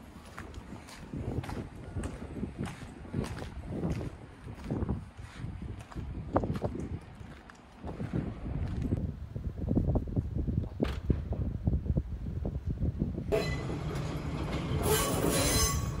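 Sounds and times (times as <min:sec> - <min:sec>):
railcar wheels knocking over rail joints: 0:13.3 - 0:16.0
high hissing wheel squeal: 0:14.8 - 0:16.0.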